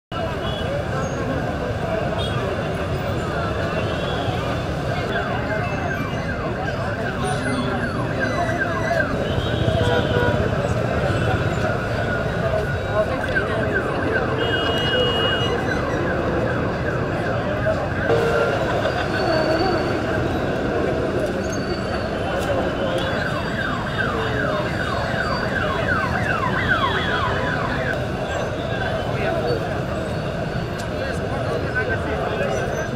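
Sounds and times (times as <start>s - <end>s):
crowd chatter: 0.1s - 32.9s
outdoor background noise: 0.1s - 32.9s
street noise: 0.1s - 32.9s
siren sweeping downward: 15.5s - 28.2s.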